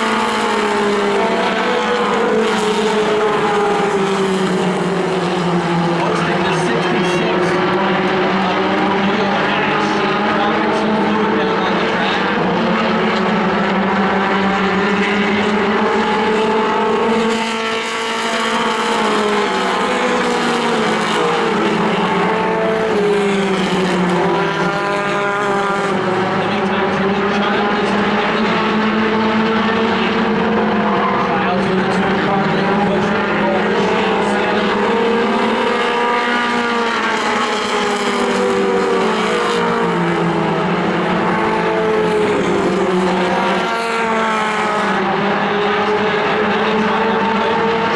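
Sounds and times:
race car engines: 0:00.0 - 0:47.9.

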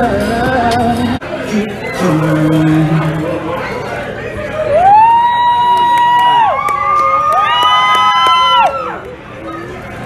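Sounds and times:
people screaming with joy: 0:04.5 - 0:09.0.

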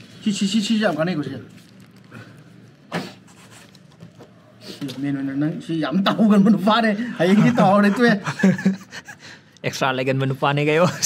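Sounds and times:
packaging scratching and rubbing: 0:00.0 - 0:04.2.

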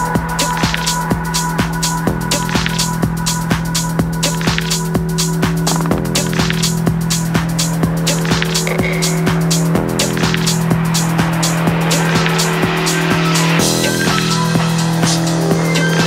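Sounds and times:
kick drum beat: 0:00.0 - 0:16.0
ticking hi-hats: 0:00.0 - 0:16.0
rising noise sweep: 0:04.3 - 0:16.0.

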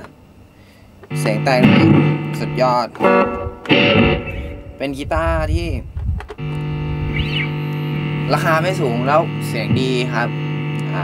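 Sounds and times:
distorted electric guitar: 0:01.0 - 0:05.6, 0:06.3 - 0:11.0.

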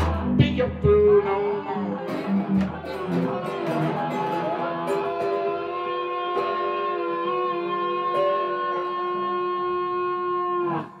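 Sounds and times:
blues guitar chord ringing: 0:00.0 - 0:11.0.

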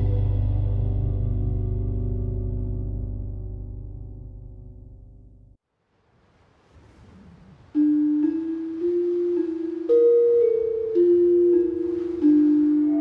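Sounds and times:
metallophone melody: 0:07.8 - 0:13.0.

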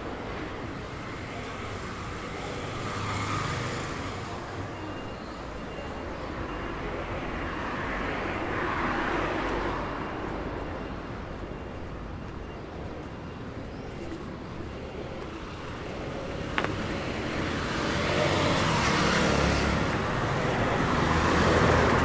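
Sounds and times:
steady traffic hum: 0:00.0 - 0:22.0
cars passing: 0:05.7 - 0:22.0.

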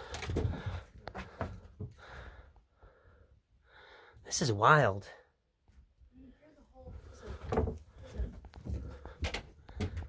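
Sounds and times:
knocks and thumps on wood: 0:07.5 - 0:07.8.

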